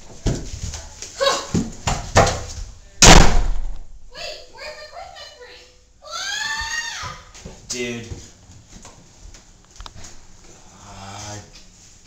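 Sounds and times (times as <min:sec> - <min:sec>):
loud bang: 0:03.0 - 0:04.1.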